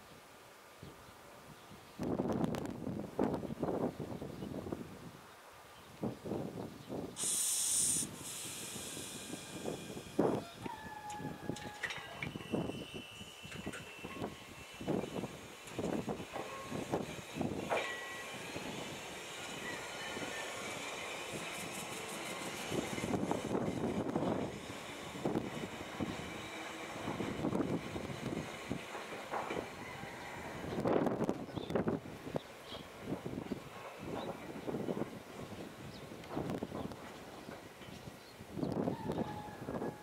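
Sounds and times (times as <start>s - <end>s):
air release hiss: 7.2s - 10.6s
train motor whining: 7.2s - 31.9s
train wheels knocking: 15.1s - 29.8s.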